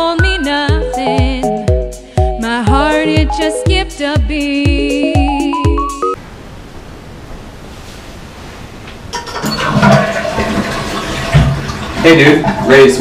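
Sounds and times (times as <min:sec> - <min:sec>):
toilet flushing: 0:09.2 - 0:13.0.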